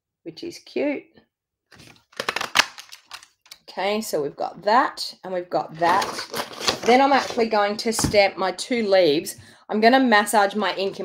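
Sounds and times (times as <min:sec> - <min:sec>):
paper crunching: 0:01.8 - 0:03.3.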